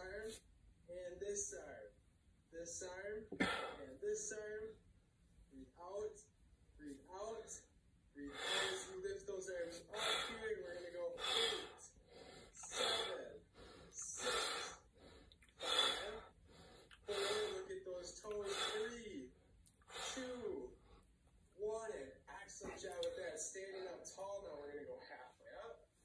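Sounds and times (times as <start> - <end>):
man breathing hard: 8.3 - 9.0, 9.8 - 10.6, 11.2 - 17.7, 18.4 - 19.0, 19.8 - 21.0
man gasping: 9.8 - 10.5, 11.2 - 17.7, 18.4 - 18.9.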